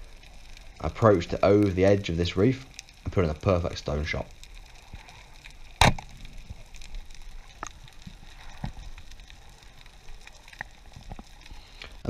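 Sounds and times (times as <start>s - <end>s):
faint underwater hiss: 0.0s - 12.0s.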